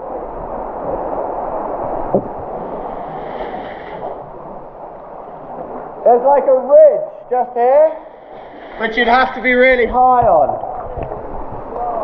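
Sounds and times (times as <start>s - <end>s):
seawater sloshing and lapping: 8.1s - 11.8s.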